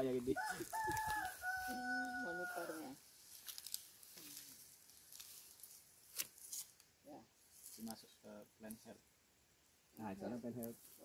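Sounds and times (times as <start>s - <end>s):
rooster crowing: 0.3s - 3.0s.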